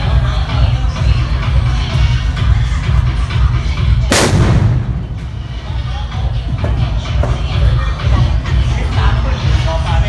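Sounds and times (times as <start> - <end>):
firecracker bang: 4.1 - 5.6
heavy low rumble: 4.1 - 6.5.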